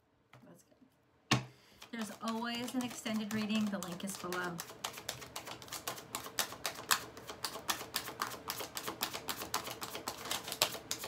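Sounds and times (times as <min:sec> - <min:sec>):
cards being shuffled: 0:01.3 - 0:11.0.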